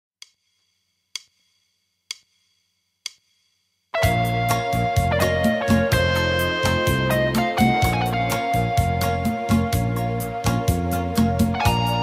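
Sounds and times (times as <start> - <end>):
sharp count-in clicks: 0.2 - 0.5, 1.1 - 1.5, 2.1 - 2.4, 3.0 - 3.3
full band music: 4.0 - 12.0.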